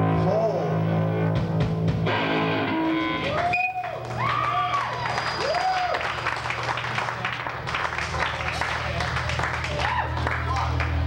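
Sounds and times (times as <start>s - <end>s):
rock band playing: 0.0s - 4.6s
audience applause: 3.3s - 11.0s.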